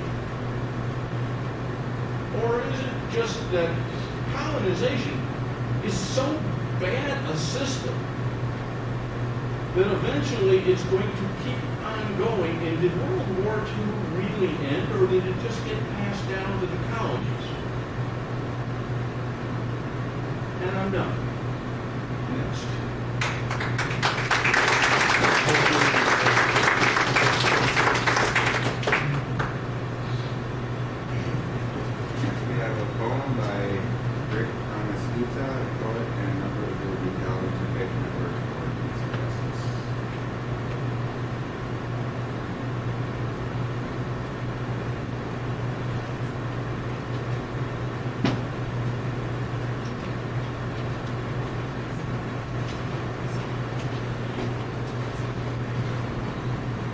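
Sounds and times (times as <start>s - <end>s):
steady low hum: 0.0s - 56.9s
audience applauding: 23.2s - 29.6s.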